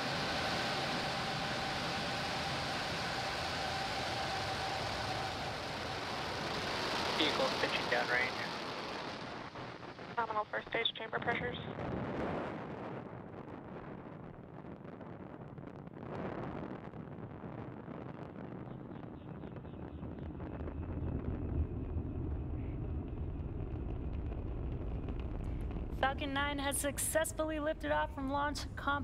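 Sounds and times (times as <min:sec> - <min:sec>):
rocket engines roaring: 0:00.0 - 0:29.0.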